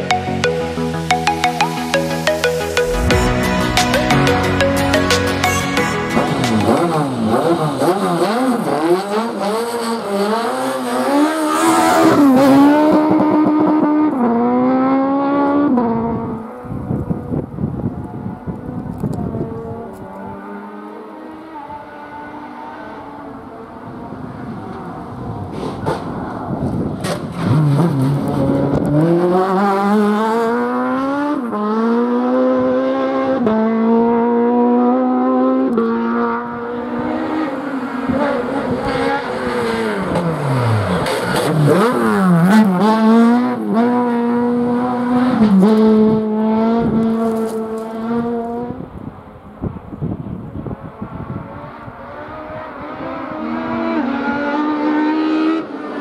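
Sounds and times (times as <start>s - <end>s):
race car engine revving: 5.9s - 16.8s, 18.5s - 48.8s, 51.2s - 56.0s.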